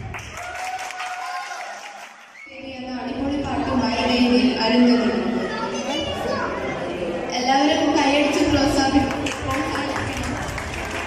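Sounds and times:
audience applauding: 0.0 - 2.5, 9.1 - 11.0.

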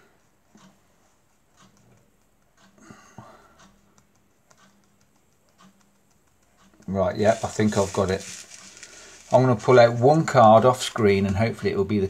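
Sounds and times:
fingers tapping and sliding cards: 3.7 - 11.4.

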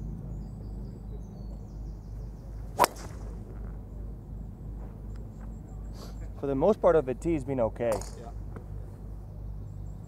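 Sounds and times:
faint outdoor air noise: 0.0 - 10.0
steady low hum: 1.7 - 5.9.

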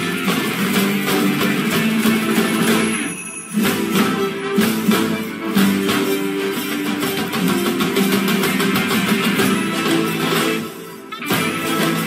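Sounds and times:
guitar music over a beat: 0.0 - 12.0.

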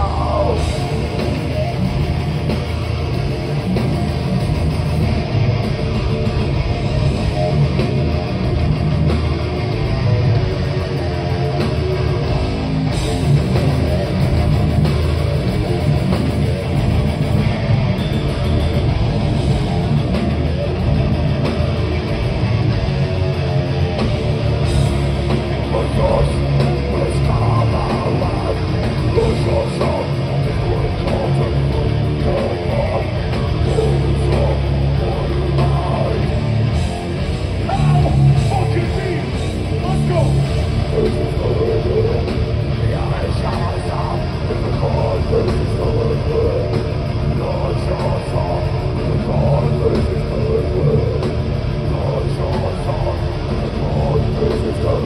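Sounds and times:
death metal band playing live: 0.0 - 55.0.

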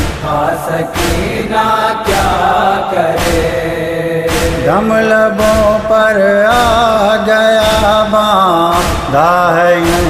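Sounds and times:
chorus chanting a lament: 0.0 - 10.0
person reciting: 0.0 - 10.0
sharp beats: 0.0 - 10.0.

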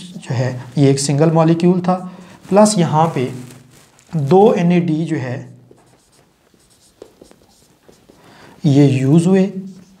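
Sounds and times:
marker writing on whiteboard: 5.3 - 10.0.

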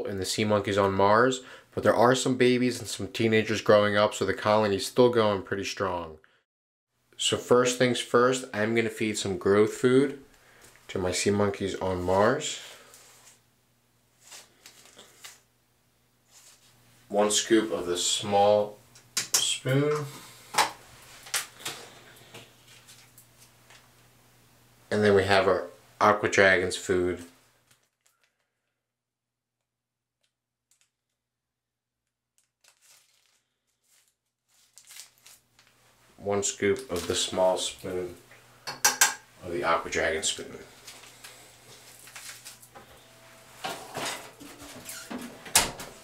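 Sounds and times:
plastic pouch crinkling: 27.6 - 28.4, 32.4 - 36.0, 40.8 - 42.7.

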